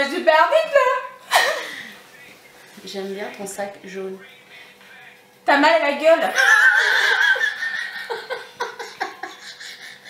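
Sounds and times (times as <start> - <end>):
women laughing hard: 6.3 - 10.0.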